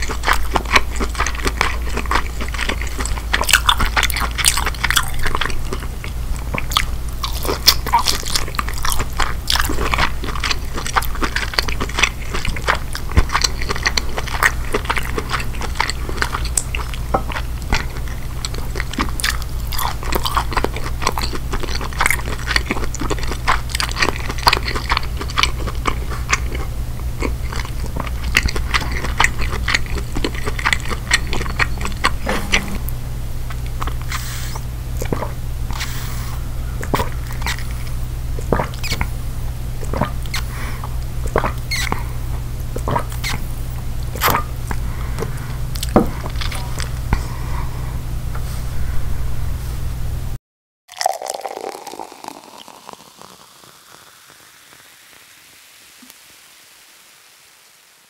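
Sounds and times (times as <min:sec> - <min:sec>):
wet chewing mouth sounds: 0:00.0 - 0:32.3, 0:33.8 - 0:39.2, 0:39.8 - 0:47.3
steady low hum: 0:26.3 - 0:50.4.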